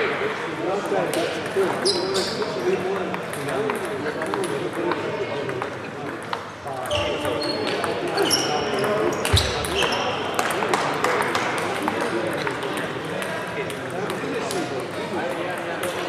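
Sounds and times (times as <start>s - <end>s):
murmur of voices in a hall: 0.0s - 16.0s.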